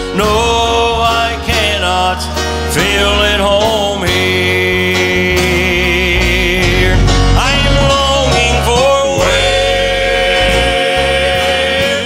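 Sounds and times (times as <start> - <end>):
instrumental accompaniment: 0.0 - 12.0
men's group singing gospel: 0.0 - 12.0.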